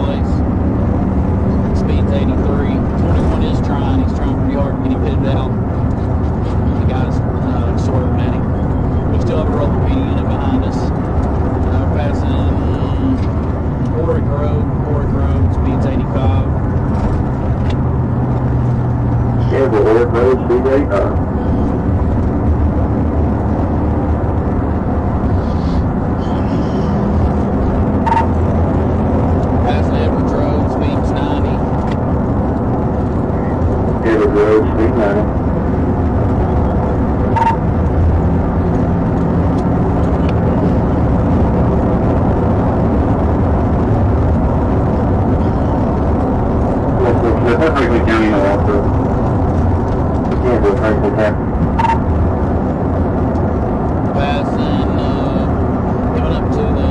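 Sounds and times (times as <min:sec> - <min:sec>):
muffled voices: 0:00.0 - 0:00.4, 0:01.5 - 0:17.8, 0:19.3 - 0:21.8, 0:25.2 - 0:28.2, 0:29.4 - 0:32.0, 0:32.9 - 0:37.6, 0:39.9 - 0:41.4, 0:45.2 - 0:52.1, 0:54.0 - 0:56.9
car engine drone: 0:00.0 - 0:56.9
tire and wind noise: 0:00.0 - 0:56.9.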